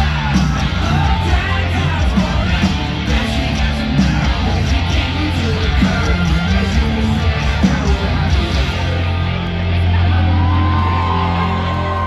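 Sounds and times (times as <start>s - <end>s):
low bass drone: 0.0s - 12.0s.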